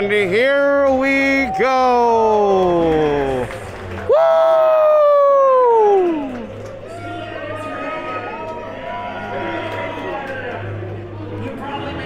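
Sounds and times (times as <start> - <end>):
crowd whoops and chatter: 0.9 - 10.8
person whooping cheer: 4.1 - 7.2.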